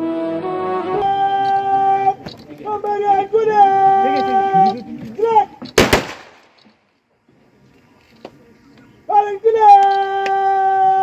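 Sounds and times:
rifle volley crack: 5.7 - 6.8.

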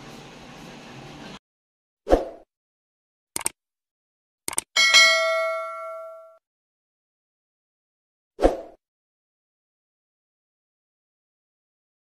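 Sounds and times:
bright bell ding: 4.8 - 6.4.

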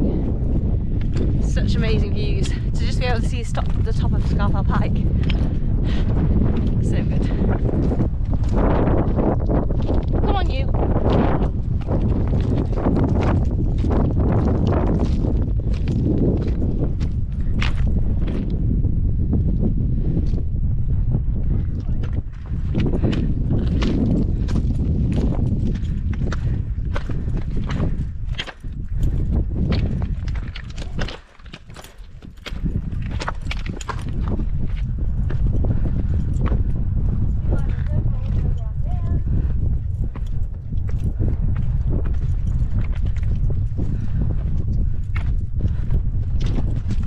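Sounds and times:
wind buffeting microphone: 0.0 - 47.0
boots on stony path: 2.9 - 18.6, 21.7 - 47.0.

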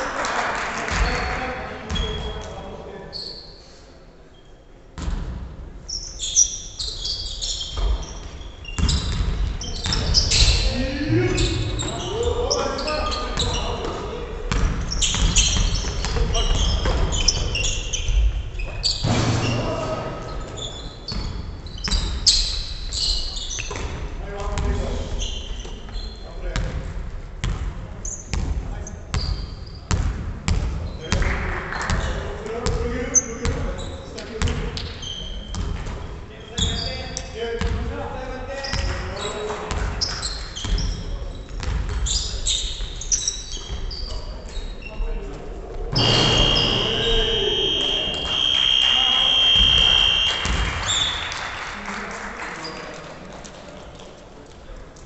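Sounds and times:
voices echoing in hall: 0.0 - 5.0, 5.6 - 55.0
basketball bouncing on wooden floor: 13.4 - 17.6, 27.4 - 27.7.

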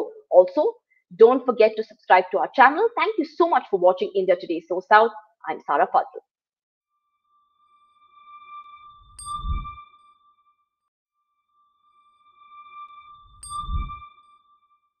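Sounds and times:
high electronic tone: 8.2 - 9.9.

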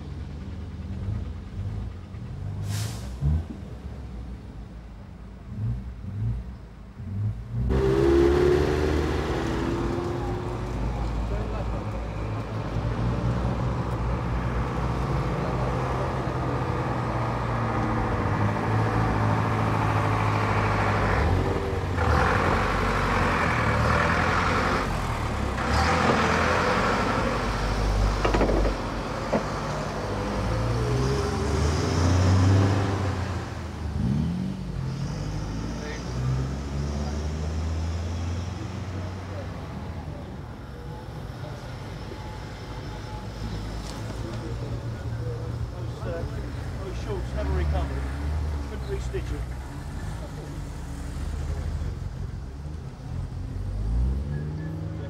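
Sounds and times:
street noise: 0.0 - 55.0
vehicle engines running: 0.0 - 55.0
engine revving: 5.5 - 11.7, 14.7 - 39.3.

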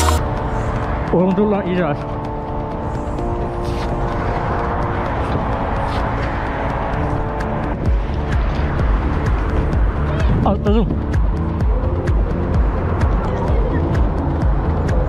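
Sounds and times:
background music with low beat: 0.0 - 15.0
traffic noise: 0.0 - 15.0.

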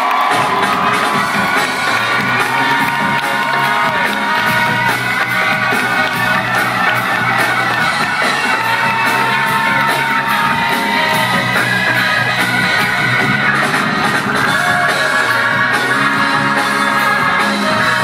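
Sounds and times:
crowd cheering: 0.0 - 18.0
live band playing a song: 0.0 - 18.0.

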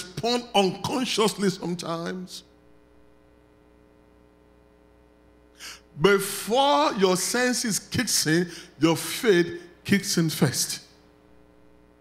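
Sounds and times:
faint steady hum: 0.0 - 12.0
man's sharp in-breath: 5.6 - 5.9, 8.5 - 8.8.

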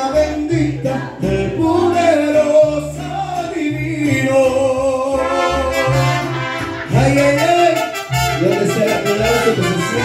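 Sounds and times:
deep bass notes: 0.0 - 10.0
man singing through microphone: 0.0 - 10.0.

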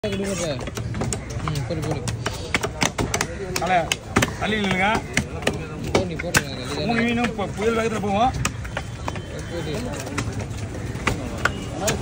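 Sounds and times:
knife chopping fish on wooden block: 0.6 - 6.5.

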